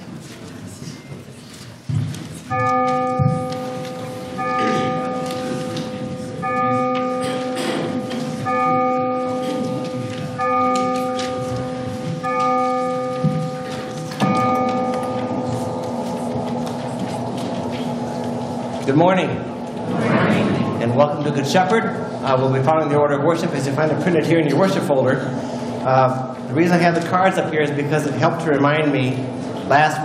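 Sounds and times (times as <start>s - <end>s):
church bell tolling: 2.5s - 30.0s.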